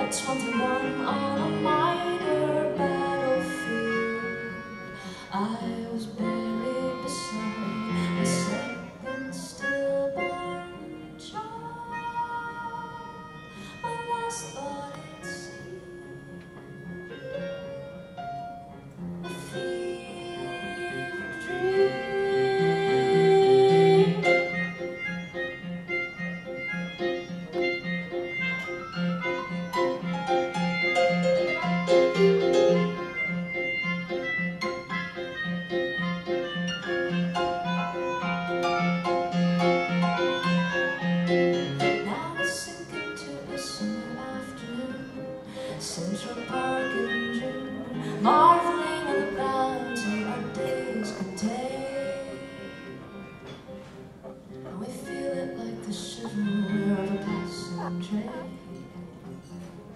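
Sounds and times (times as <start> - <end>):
melodica melody: 0.0 - 59.6
stage piano chords: 0.0 - 59.9.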